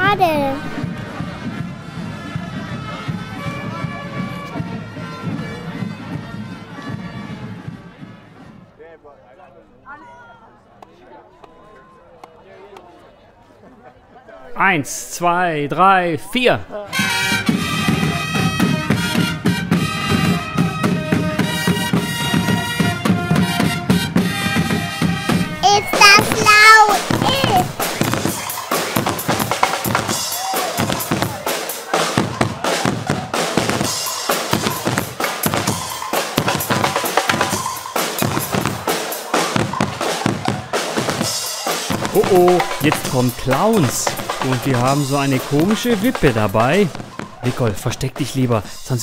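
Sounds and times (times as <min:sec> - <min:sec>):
snare drum: 0:25.3 - 0:48.4
sliding brass notes: 0:41.9 - 0:48.0.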